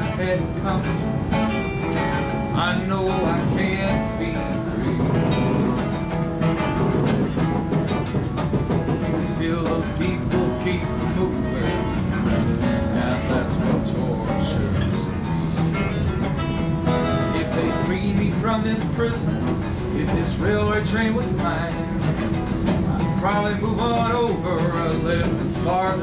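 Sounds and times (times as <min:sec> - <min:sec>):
acoustic guitars strumming and picking: 0:00.0 - 0:26.0
moving train rumble: 0:00.0 - 0:26.0.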